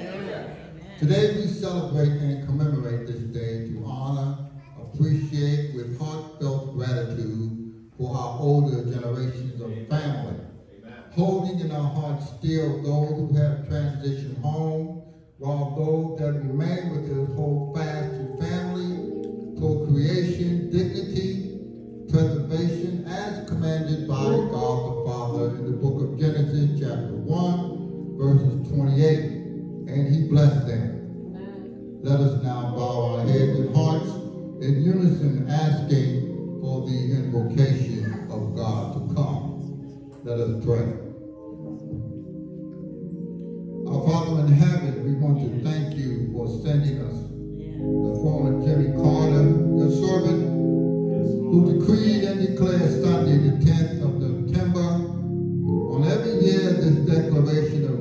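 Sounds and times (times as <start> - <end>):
man speaking into a microphone: 0.0 - 31.1, 32.0 - 41.2, 43.8 - 58.0
soft background music: 0.0 - 58.0
man chanting: 1.0 - 31.0, 32.0 - 41.2, 43.9 - 58.0.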